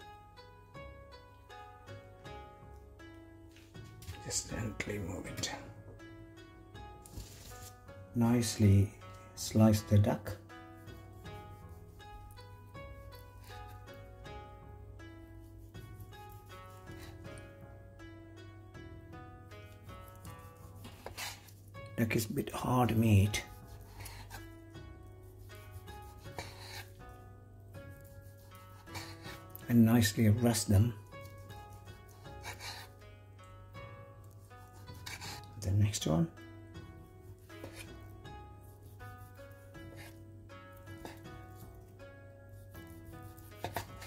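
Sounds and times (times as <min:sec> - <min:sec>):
plucked string music: 0:10.0 - 0:44.0
knife slicing on wooden board: 0:20.1 - 0:21.6, 0:25.6 - 0:26.9, 0:34.8 - 0:35.6, 0:37.5 - 0:37.9, 0:42.7 - 0:44.0.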